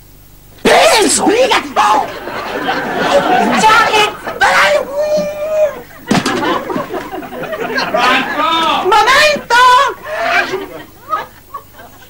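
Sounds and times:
loud voices calling out: 0.6s - 11.4s.

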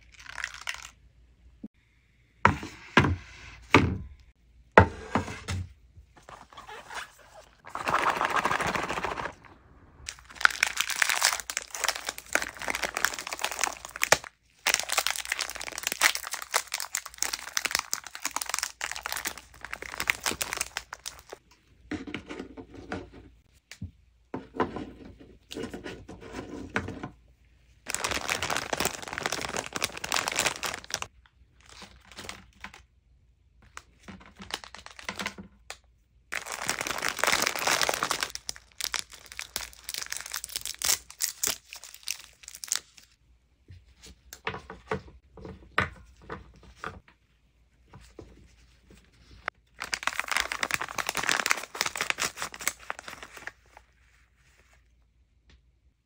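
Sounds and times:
plastic packets crinkling and tearing: 0.0s - 1.0s, 6.9s - 21.4s, 27.9s - 32.8s, 33.8s - 35.3s, 36.3s - 43.2s, 49.2s - 53.9s.

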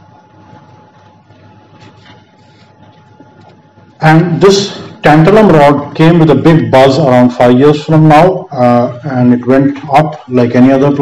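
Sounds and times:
high-pitched whine: 3.4s - 11.0s.

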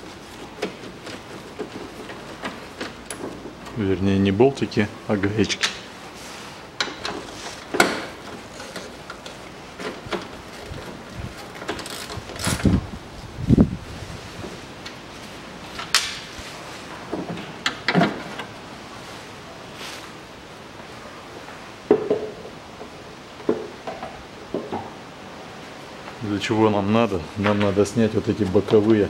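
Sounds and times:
knocks and clunks of car parts: 6.8s - 11.9s, 17.1s - 18.5s, 21.9s - 25.0s.

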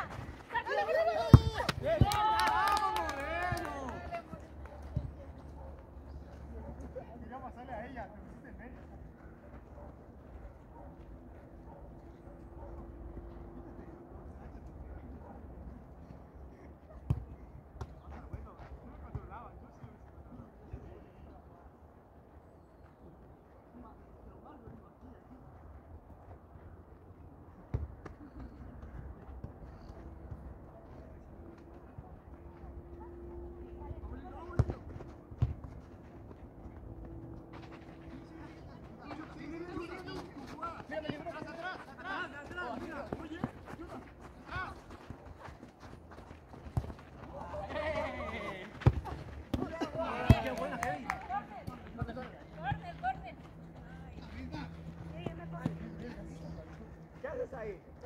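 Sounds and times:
players shouting: 0.0s - 4.3s
ball being kicked: 34.5s - 35.8s.

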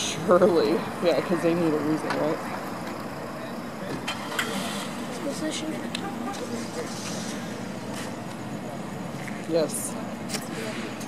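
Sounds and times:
faint indistinct voices: 0.0s - 11.0s
nearby car traffic: 0.0s - 11.0s.

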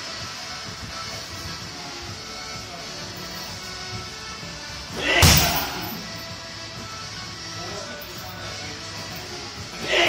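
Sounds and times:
background music: 0.0s - 10.0s
kick striking heavy bag: 5.1s - 5.8s.

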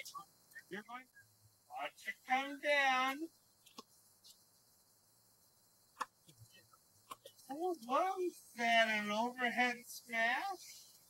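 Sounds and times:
person speaking: 0.0s - 3.3s, 6.4s - 10.9s.

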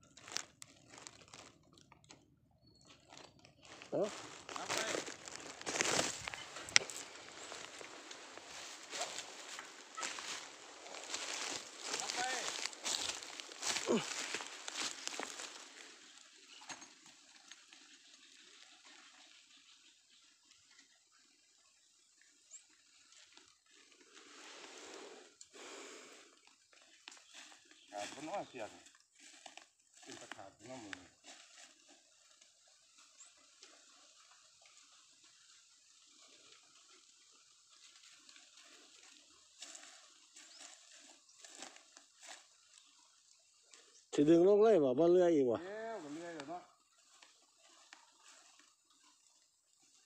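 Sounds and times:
dry leaves crunching and rustling: 0.0s - 1.7s, 3.0s - 18.6s, 37.8s - 42.9s.

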